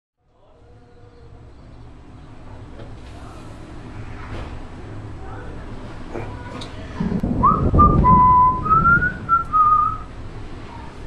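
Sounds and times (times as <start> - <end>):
man whistling a tune: 7.4 - 10.0.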